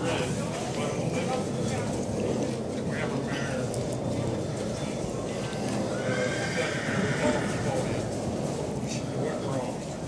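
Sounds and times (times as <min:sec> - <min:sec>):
horse whinnying: 0:05.9 - 0:07.9.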